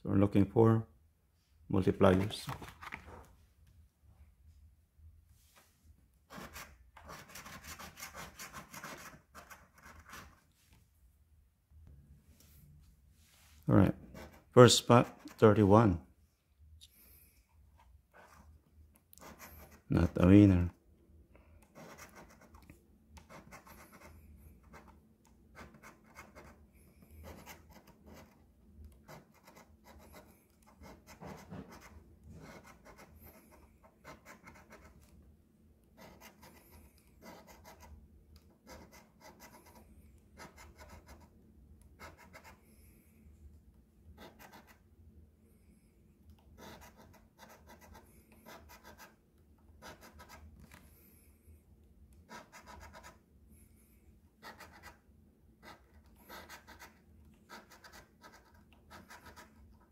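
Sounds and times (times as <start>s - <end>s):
coin scratching lottery ticket: 6.3s - 10.4s, 21.7s - 22.6s, 23.2s - 26.6s, 27.2s - 28.4s, 29.0s - 35.0s, 36.0s - 37.9s, 38.6s - 39.8s, 44.2s - 44.8s, 46.6s - 49.2s, 49.8s - 50.4s, 54.4s - 55.0s, 55.6s - 59.7s.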